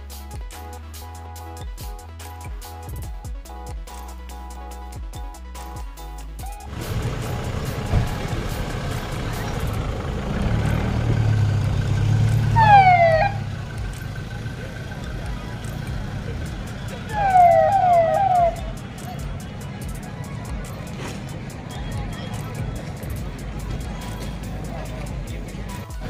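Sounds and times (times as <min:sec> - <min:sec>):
car engine running: 0:06.7 - 0:26.0
siren whoops: 0:12.6 - 0:13.4, 0:17.1 - 0:18.6.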